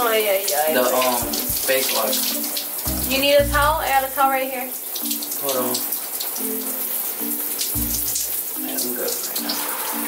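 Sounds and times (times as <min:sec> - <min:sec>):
background music with low notes: 0:00.0 - 0:10.0
shower water splashing on skin: 0:00.0 - 0:10.0
deep bass hit: 0:01.2 - 0:01.7, 0:02.9 - 0:04.1.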